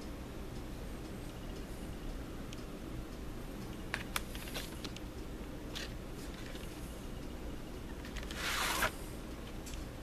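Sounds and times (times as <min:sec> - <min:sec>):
cardboard sleeve sliding scrape: 0:08.3 - 0:09.0.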